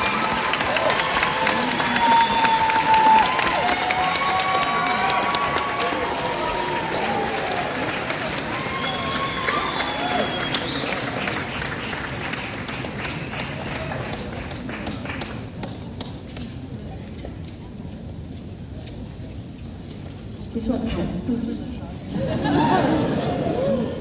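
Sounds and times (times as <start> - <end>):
audience applauding: 0.0 - 16.9, 22.1 - 24.0
sharp whistles: 8.8 - 11.0.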